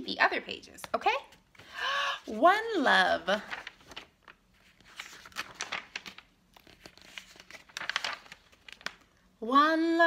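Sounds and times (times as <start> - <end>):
book pages turning: 3.4 - 9.2.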